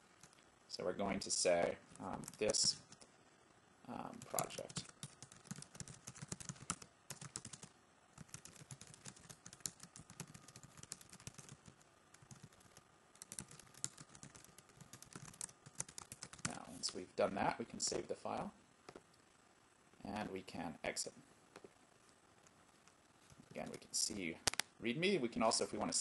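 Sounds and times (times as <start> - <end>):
typing on computer keyboard: 4.2 - 16.6.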